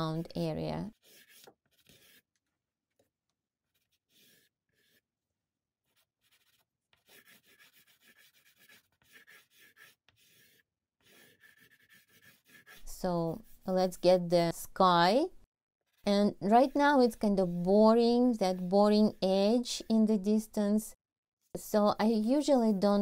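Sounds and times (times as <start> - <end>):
pastel scratching on paper: 0.8 - 14.0, 15.9 - 20.5.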